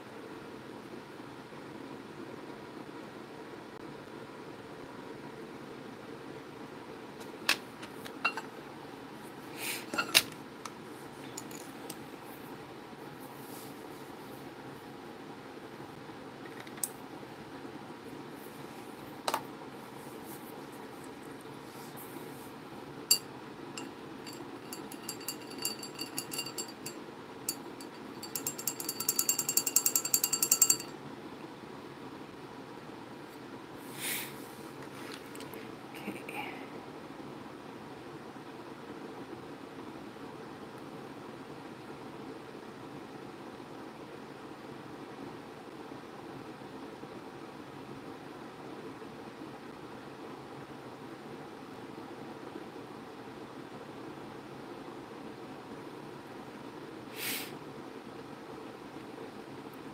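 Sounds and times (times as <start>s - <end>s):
steady background hiss: 0.0s - 59.9s
rattling run of ringing clicks: 23.8s - 30.9s.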